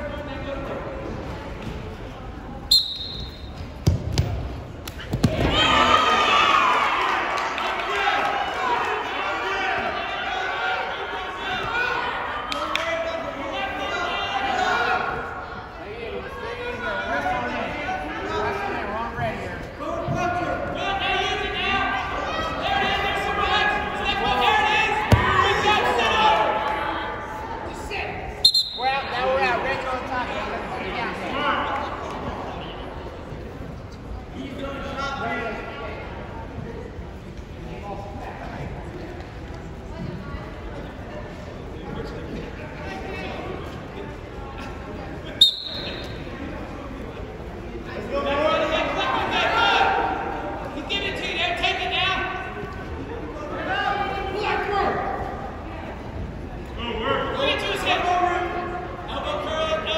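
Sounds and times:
referee whistle blast: 0:02.7 - 0:03.6, 0:28.4 - 0:29.0, 0:45.4 - 0:46.2
spectators shouting and cheering: 0:04.9 - 0:15.7, 0:20.2 - 0:27.9.

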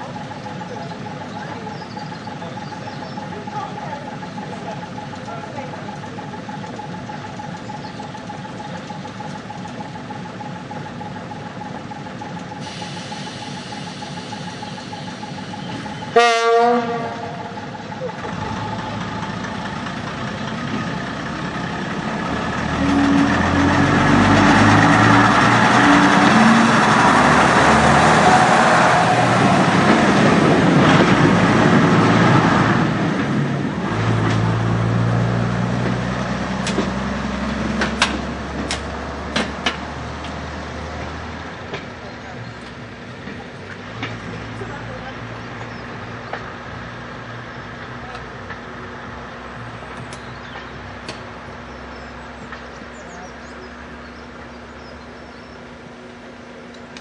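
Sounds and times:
diesel railbus engine: 0:00.0 - 0:57.0
train horn blast: 0:16.1 - 0:17.5, 0:22.7 - 0:24.2.

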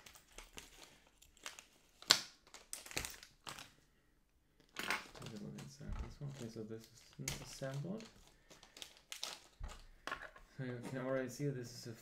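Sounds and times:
plastic bag crinkling: 0:05.0 - 0:10.2.

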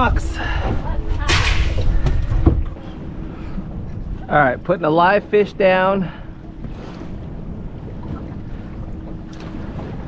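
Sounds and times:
boat rumble: 0:00.0 - 0:10.0
low wind: 0:00.0 - 0:10.0.

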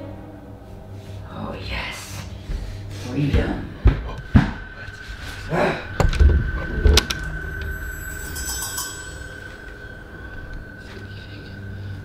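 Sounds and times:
low rumble: 0:00.4 - 0:12.0
steady high-pitched tone: 0:04.5 - 0:12.0.

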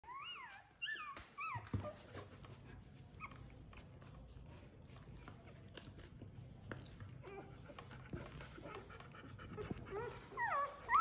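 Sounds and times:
puppies squealing: 0:09.9 - 0:11.0.

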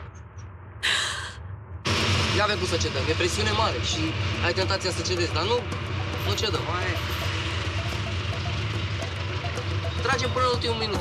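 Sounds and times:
road and traffic noise: 0:00.0 - 0:11.0
small engine running: 0:03.5 - 0:11.0.

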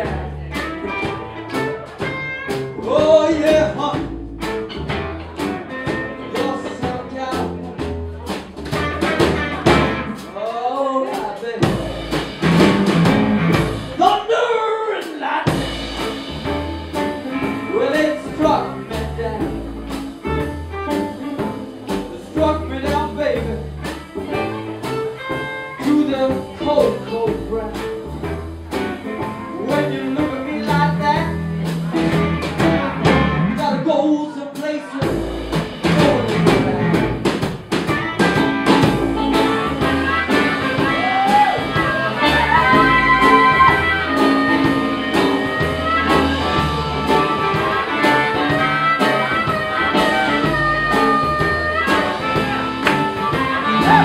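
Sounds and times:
live blues band playing: 0:00.0 - 0:54.0.

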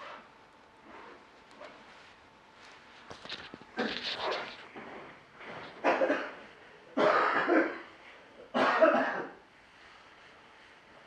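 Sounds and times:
person coughing: 0:05.8 - 0:06.4, 0:07.0 - 0:07.9, 0:08.5 - 0:09.4.

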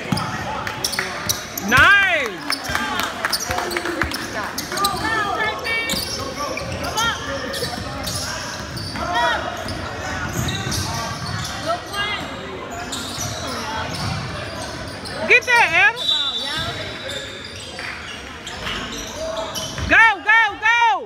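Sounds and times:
sneakers squeaking on court: 0:00.0 - 0:19.9.

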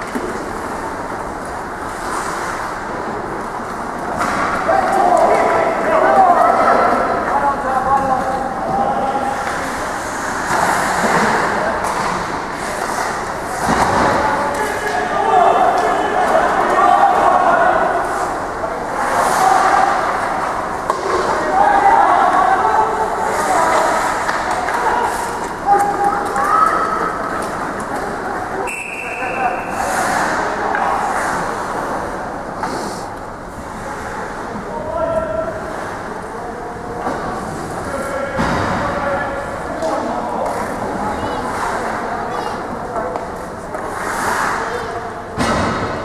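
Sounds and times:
echoing voices in a hall: 0:00.0 - 0:46.0
hockey sticks and skates knocking: 0:19.0 - 0:21.4, 0:23.3 - 0:28.2.

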